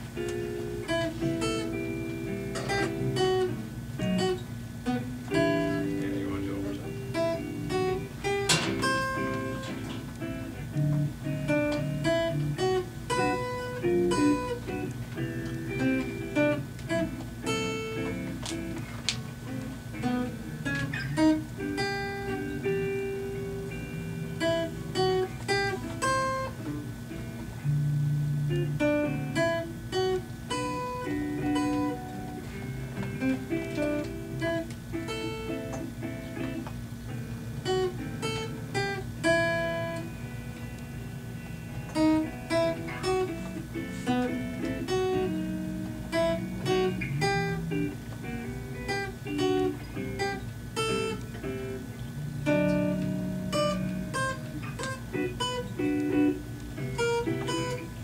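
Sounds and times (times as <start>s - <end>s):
acoustic guitar strummed chords: 0.0s - 58.0s
electric guitar picked notes: 0.0s - 58.0s.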